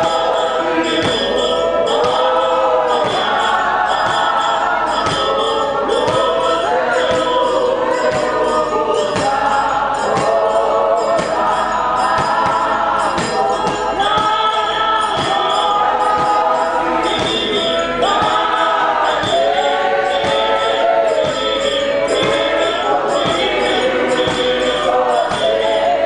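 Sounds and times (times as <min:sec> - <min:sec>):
choir singing in harmony: 0:00.0 - 0:26.0
faint steady beat: 0:00.0 - 0:26.0.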